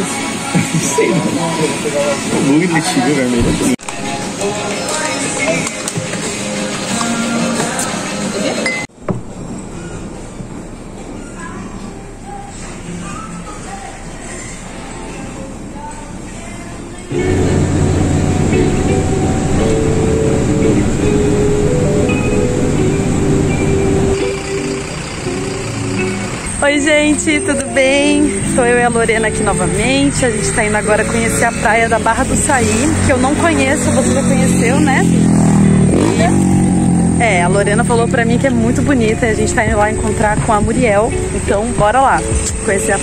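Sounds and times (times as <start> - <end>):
voices: 0.0 - 8.8, 11.0 - 43.0
music: 0.0 - 8.9, 11.4 - 36.0, 37.2 - 43.0.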